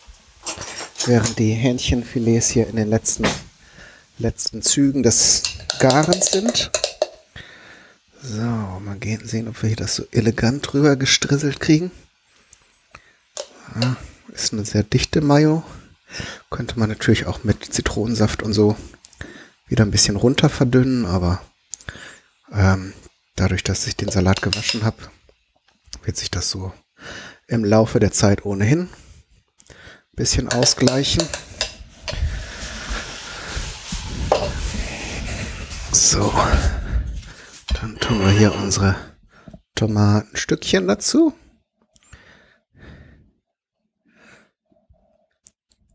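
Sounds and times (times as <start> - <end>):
man speaking: 1.0 - 3.4, 4.2 - 6.9, 13.4 - 15.7, 22.5 - 25.1, 30.2 - 31.6, 35.9 - 37.0, 37.7 - 39.1
chicken sizzling in a frying pan: 1.4 - 7.4, 19.6 - 25.1, 30.3 - 35.9.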